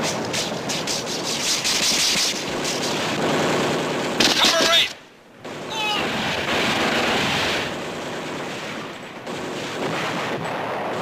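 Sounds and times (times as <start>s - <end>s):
gunfire and battle noise: 0.0s - 11.0s.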